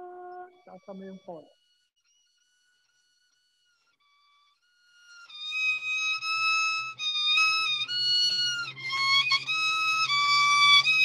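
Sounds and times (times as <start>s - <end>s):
faint high-pitched tones: 0.0s - 1.5s.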